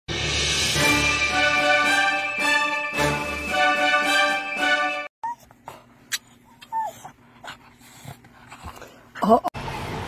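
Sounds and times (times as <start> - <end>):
dog whimpering: 5.2 - 5.6, 6.4 - 7.6.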